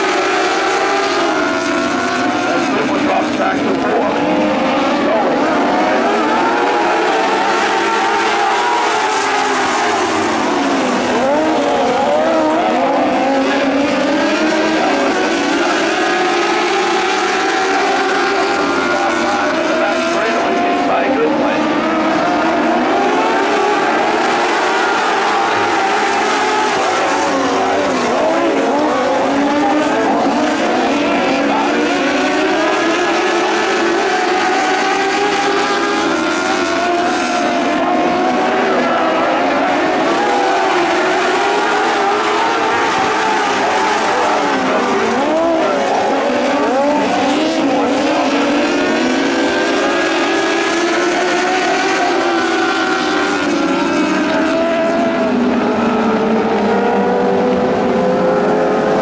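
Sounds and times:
race car engines: 0.0 - 59.0.

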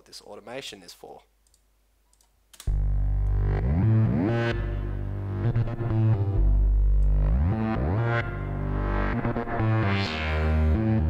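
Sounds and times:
click: 1.4 - 3.4, 7.0 - 7.2
distorted synth bass line: 2.7 - 11.0.

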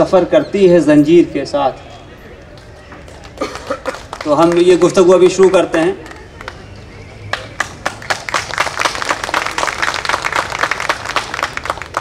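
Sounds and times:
audience applause: 2.6 - 12.0.

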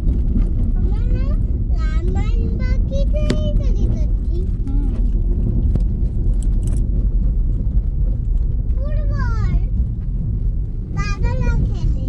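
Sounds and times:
car driving rumble: 0.0 - 12.0
road and wind noise: 0.0 - 12.0.

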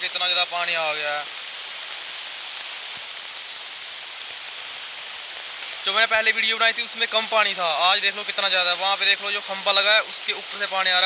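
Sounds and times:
floodwater rushing: 0.0 - 11.0.

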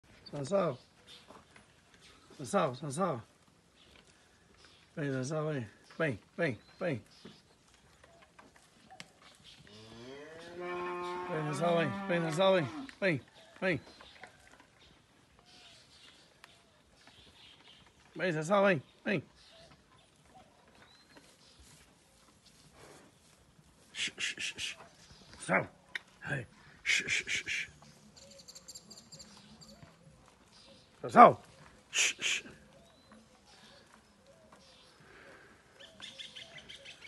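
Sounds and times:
person making hushing calls: 23.9 - 24.8, 26.8 - 27.8, 31.9 - 32.7.

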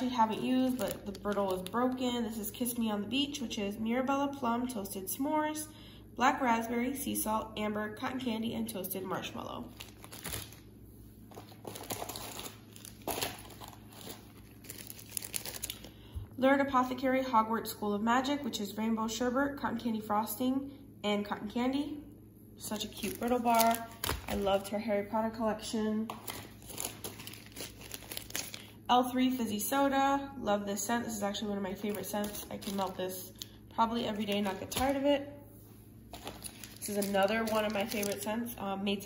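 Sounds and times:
plastic bags crinkling: 0.0 - 2.2, 9.6 - 10.7, 11.3 - 16.1, 22.8 - 24.7, 26.1 - 28.8, 31.8 - 35.0, 36.1 - 38.6.

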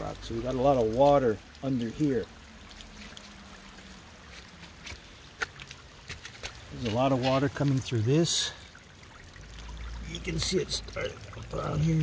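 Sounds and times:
water trickling through wall: 0.0 - 12.0.

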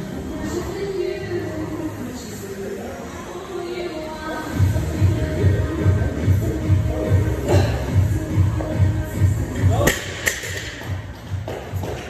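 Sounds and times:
background music with steady beat: 0.0 - 12.0
barbell bouncing on rubber floor: 9.8 - 12.0.

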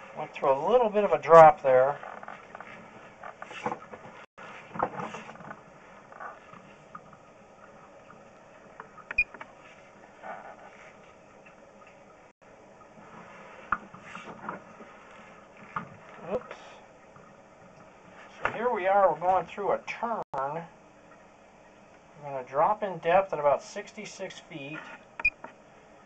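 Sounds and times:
faint clicks and knocks: 2.0 - 9.7.

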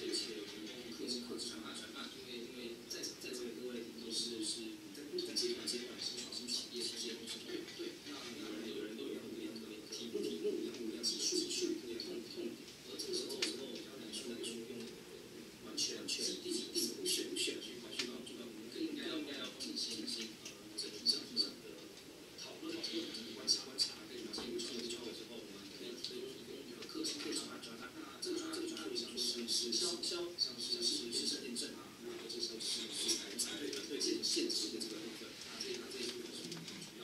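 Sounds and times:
man talking through speakers: 0.0 - 37.0.

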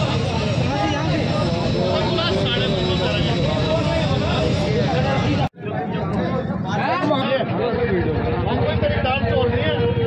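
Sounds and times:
crowd of men talking: 0.0 - 10.0.

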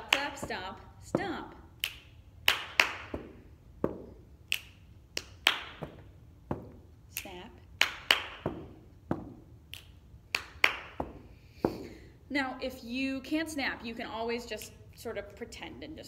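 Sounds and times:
finger snaps: 1.8 - 2.1, 4.5 - 5.6, 9.7 - 10.5
hand claps: 1.8 - 3.2, 4.5 - 6.1, 7.2 - 8.6, 9.7 - 11.1
stomps on carpeted floor: 5.8 - 6.9.

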